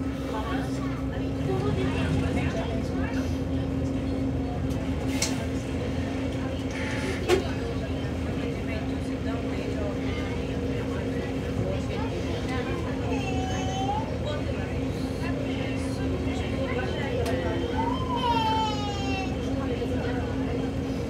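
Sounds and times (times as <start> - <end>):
bus idling rumble: 0.0 - 21.0.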